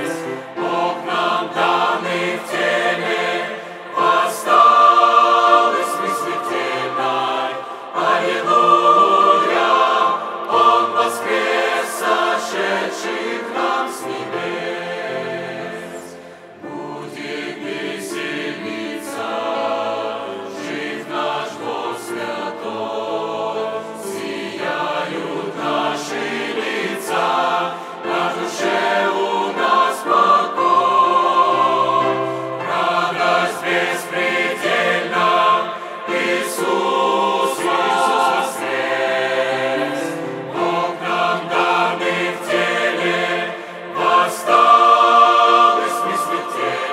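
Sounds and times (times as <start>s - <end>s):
mixed choir singing a hymn: 0.0s - 46.9s.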